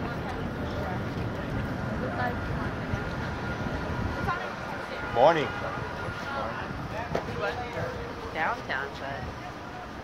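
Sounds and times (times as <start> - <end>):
faint chatter: 0.0 - 10.0
low traffic rumble: 0.0 - 10.0.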